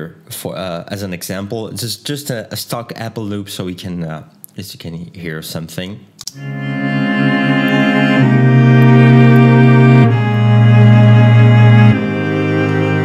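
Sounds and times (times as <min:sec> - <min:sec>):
sustained low chords: 0:06.3 - 0:13.0.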